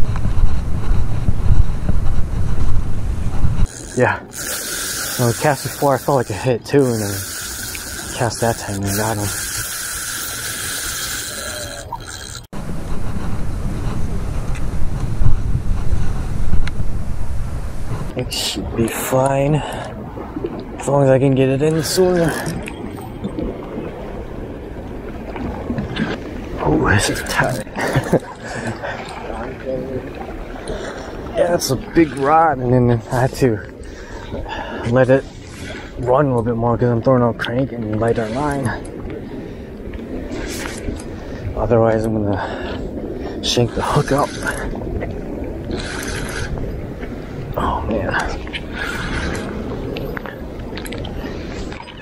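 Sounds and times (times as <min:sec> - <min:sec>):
water lapping against pier: 0:00.0 - 0:52.0
wind rumbling on microphone: 0:00.0 - 0:52.0.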